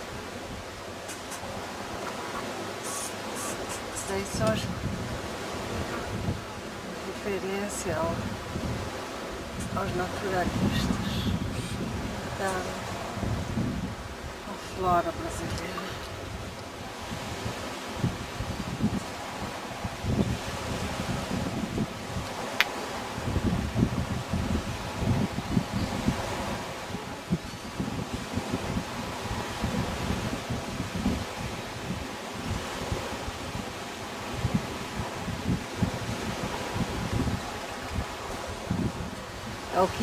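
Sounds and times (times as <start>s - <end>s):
leaves rustling: 0.0s - 40.0s
wind buffeting microphone: 0.0s - 40.0s.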